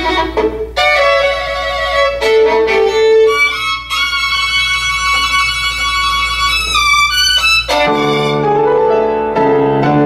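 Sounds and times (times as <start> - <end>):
violin sustained high note: 0.0 - 8.7.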